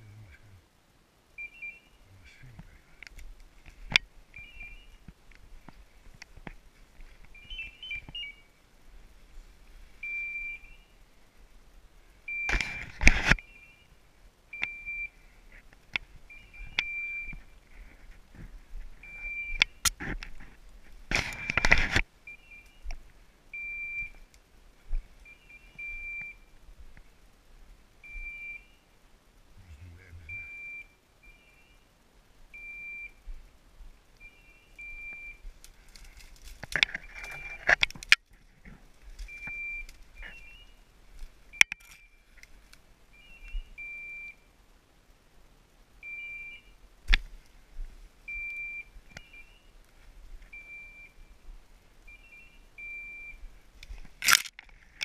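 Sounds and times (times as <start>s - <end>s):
collar beeper beeping: 1.4s - 2.0s, 10.0s - 10.9s, 12.3s - 12.6s, 14.5s - 15.2s, 16.3s - 17.4s, 19.0s - 19.8s, 22.3s - 22.8s, 23.5s - 24.2s, 25.2s - 26.5s, 28.0s - 28.8s, 30.0s - 31.8s, 32.6s - 33.2s, 34.2s - 35.4s, 39.3s - 40.8s, 43.1s - 44.5s, 46.0s - 46.8s, 48.3s - 49.7s, 50.5s - 51.3s, 52.1s - 53.4s
brush rustling: 2.0s - 27.9s, 34.7s - 43.7s.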